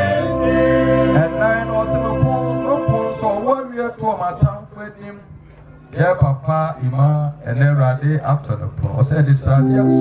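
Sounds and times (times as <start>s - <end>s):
low keyboard notes: 0.0s - 4.6s, 9.4s - 10.0s.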